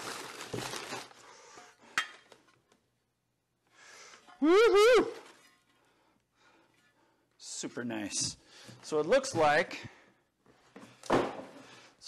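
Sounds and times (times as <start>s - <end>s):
packing paper rustling: 0.0s - 1.3s.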